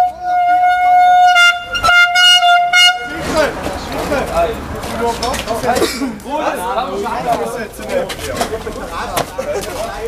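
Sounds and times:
party horn blasts: 0.0s - 3.2s.

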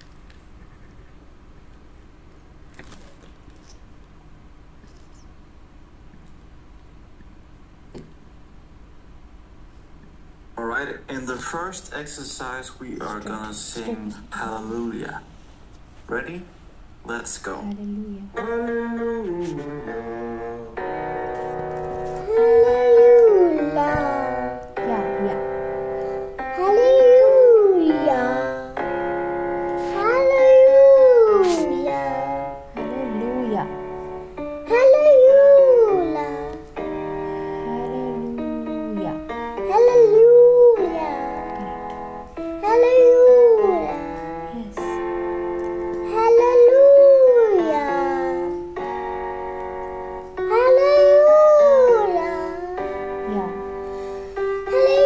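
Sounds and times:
backing track of held notes: 18.3s - 55.0s.

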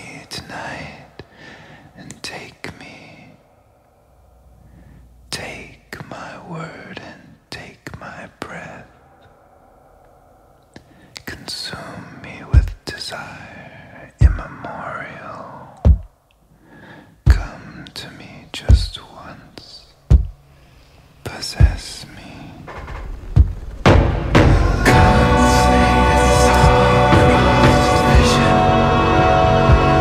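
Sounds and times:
person whispering: 0.0s - 15.9s, 16.8s - 20.0s, 21.2s - 22.7s
slow deep drum thumps: 12.6s - 12.8s, 14.2s - 14.5s, 15.9s - 16.1s, 17.3s - 17.5s, 18.7s - 19.0s, 20.1s - 20.4s, 21.6s - 21.8s, 22.7s - 25.5s
soft music: 24.4s - 30.0s.

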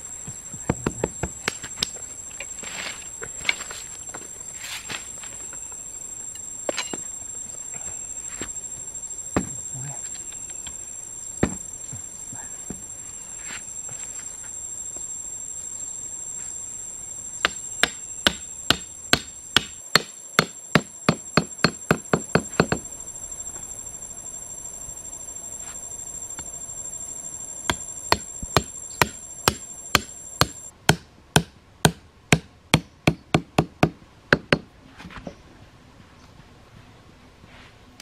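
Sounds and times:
hatchet knocking wooden stake: 17.4s - 22.8s, 27.7s - 34.7s.

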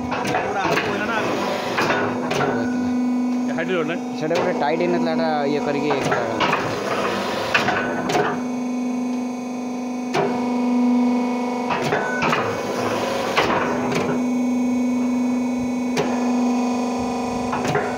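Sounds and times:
motor and hydraulic hum: 0.0s - 17.9s.

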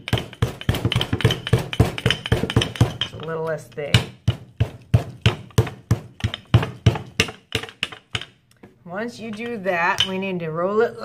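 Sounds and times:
rolling pin knocking on clay: 0.0s - 8.4s.

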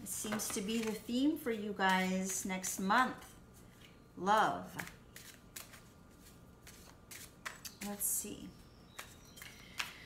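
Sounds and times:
cards shuffling: 4.8s - 7.9s.

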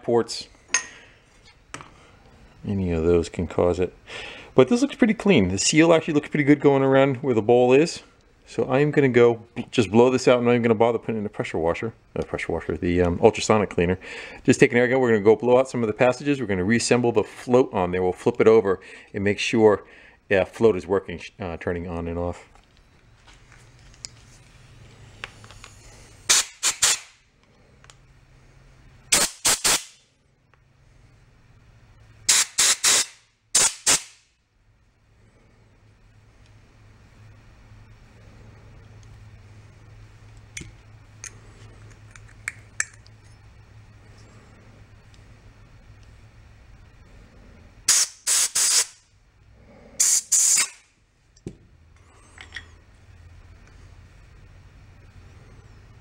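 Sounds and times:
compressed air blow gun hissing: 25.6s - 27.2s, 32.3s - 34.1s, 47.9s - 49.0s, 49.9s - 50.8s.

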